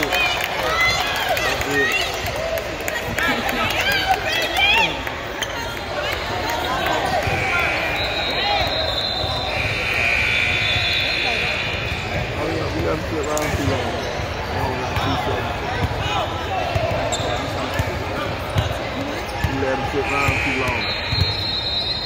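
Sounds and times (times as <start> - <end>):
echoing crowd voices: 0.0 - 22.0.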